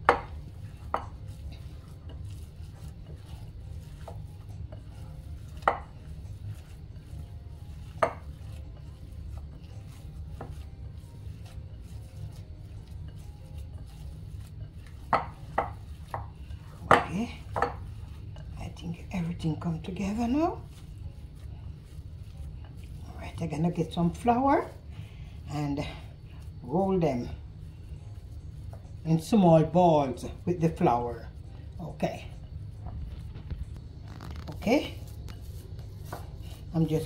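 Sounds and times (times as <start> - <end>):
hands kneading meat mix: 0.0 - 37.0
steady low hum: 0.0 - 37.0.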